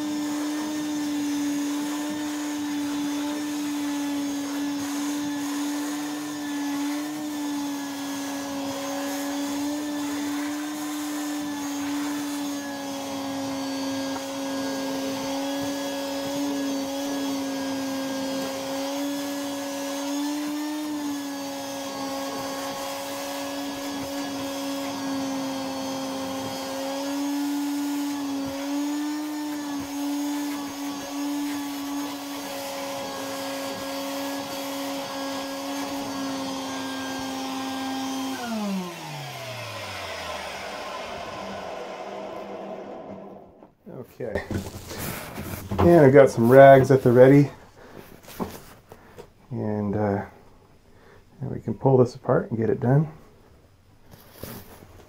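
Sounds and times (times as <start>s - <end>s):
vacuum motor humming: 0.0s - 43.7s.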